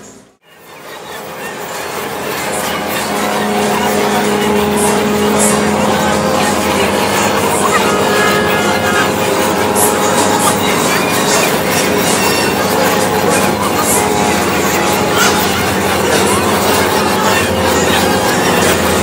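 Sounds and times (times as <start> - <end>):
city traffic: 0.0 - 19.0
steady droning tones: 0.0 - 19.0.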